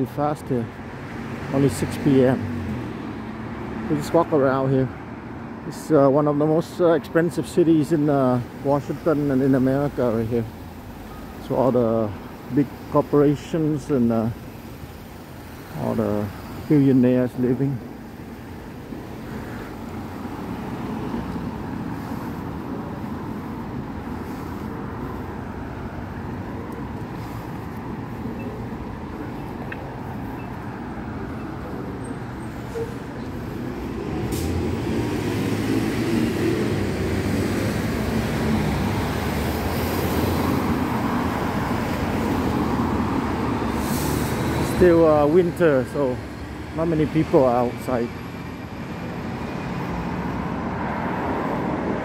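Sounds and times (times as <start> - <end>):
cars and bus passing: 0.0 - 52.0.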